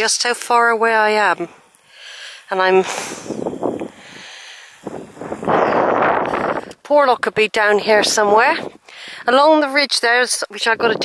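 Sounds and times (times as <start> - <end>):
wind gusting over microphone: 3.0 - 4.2, 4.8 - 8.8, 10.6 - 11.0.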